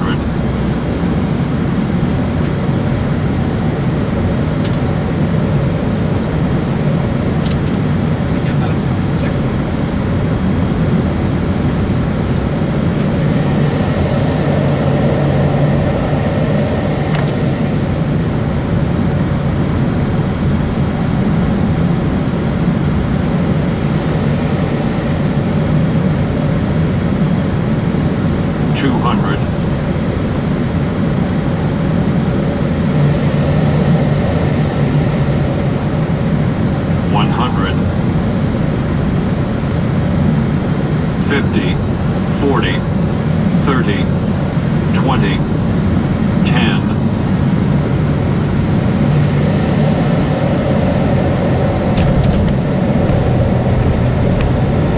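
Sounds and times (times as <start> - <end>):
turboprop cockpit drone: 0.0 - 54.9.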